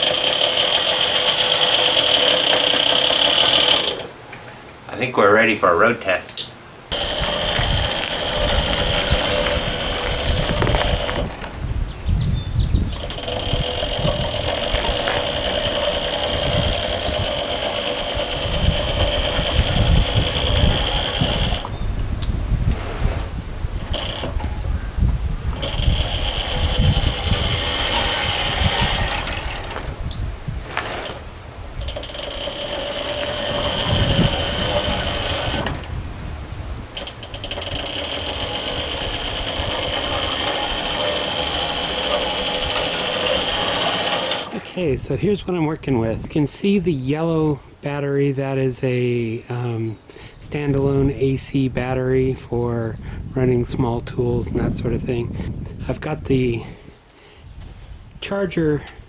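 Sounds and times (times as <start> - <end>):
electric motor high whine: 0.0 - 4.1, 6.9 - 11.5, 12.8 - 21.7, 23.8 - 24.6, 25.5 - 29.9, 31.8 - 35.9, 37.0 - 44.5.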